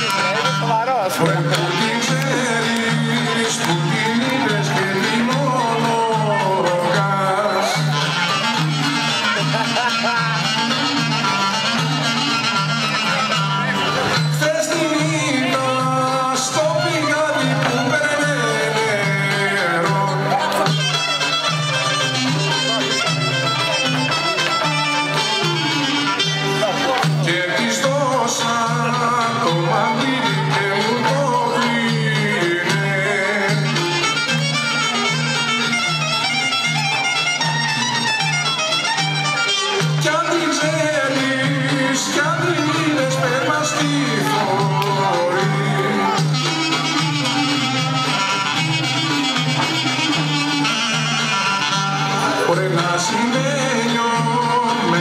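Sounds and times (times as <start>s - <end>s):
folk dance music: 0.0s - 55.0s.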